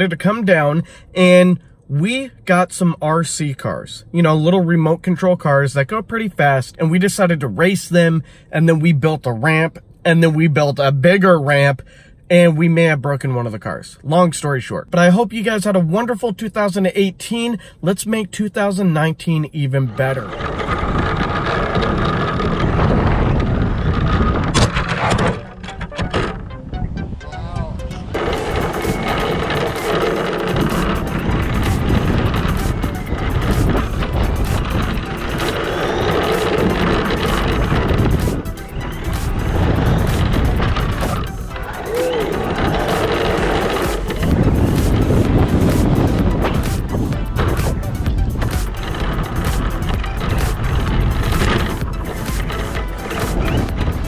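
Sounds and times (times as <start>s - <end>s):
wheels rumbling on asphalt: 15.0s - 27.2s, 27.8s - 54.0s
remote control car whining: 19.9s - 26.5s, 28.1s - 54.0s
wind noise on microphone: 20.2s - 54.0s
background music: 25.1s - 54.0s.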